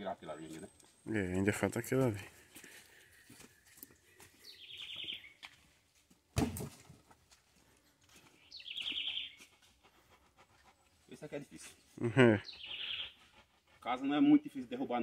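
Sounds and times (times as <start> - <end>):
heavy thud of log on dirt: 6.3 - 7.2.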